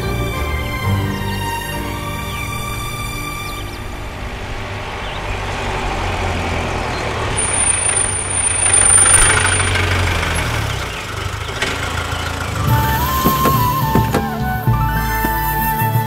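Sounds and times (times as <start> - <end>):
car engine passing by: 2.3 - 15.4.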